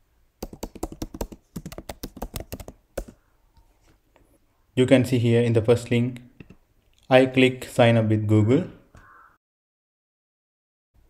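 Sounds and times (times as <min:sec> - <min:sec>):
computer keyboard typing: 0:00.4 - 0:03.2.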